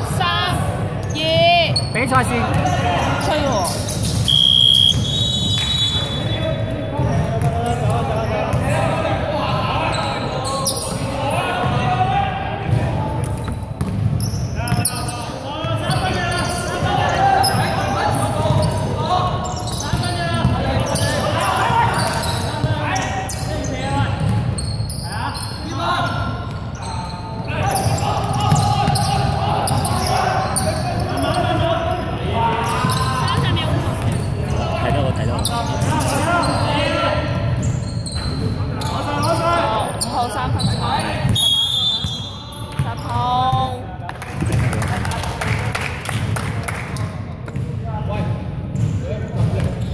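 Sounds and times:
short high whistle: 4.2s - 6.3s, 41.4s - 42.3s
people shouting in a hall: 27.5s - 33.6s.

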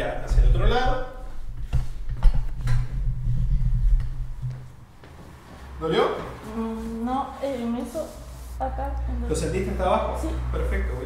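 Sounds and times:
low uneven rumble: 0.0s - 11.0s.

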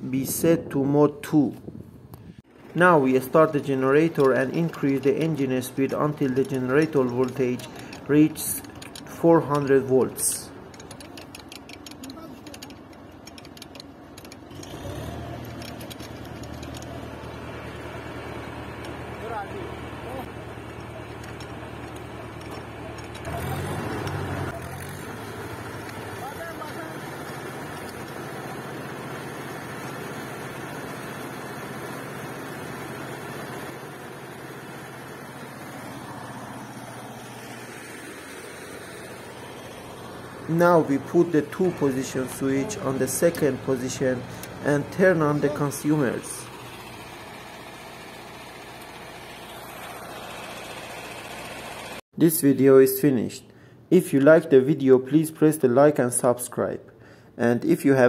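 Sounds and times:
engine running hum: 1.6s - 52.0s.

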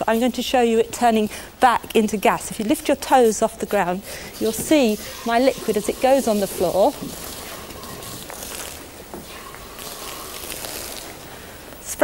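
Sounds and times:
liquid nitrogen hissing: 0.0s - 12.0s
liquid splashing on hard floor: 4.4s - 11.4s.

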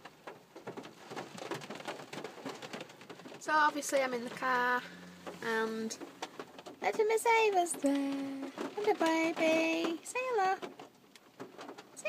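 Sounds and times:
heavy rain hitting a car: 0.0s - 12.0s.

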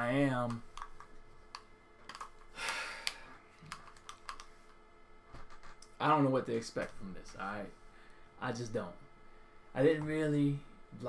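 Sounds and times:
keyboard typing: 0.5s - 2.4s, 3.0s - 4.6s.

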